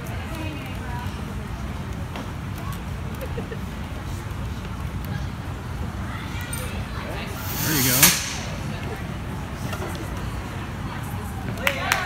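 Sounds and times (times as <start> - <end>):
sharp swish and thump: 7.4 - 8.8.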